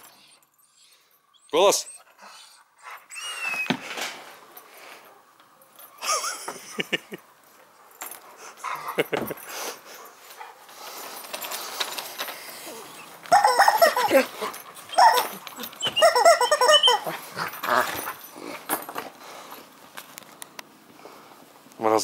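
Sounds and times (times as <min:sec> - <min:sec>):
dog whining: 0:00.0 - 0:03.9, 0:12.6 - 0:18.6.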